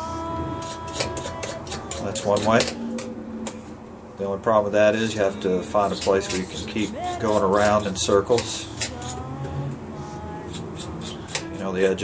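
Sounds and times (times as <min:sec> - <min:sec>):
knife scraping wire: 0:00.0 - 0:03.6, 0:05.8 - 0:12.0
steady tone: 0:00.0 - 0:12.0.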